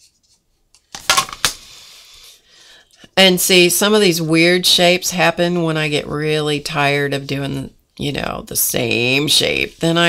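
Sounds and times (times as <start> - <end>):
paintbrush stroking paper: 8.7 - 10.0.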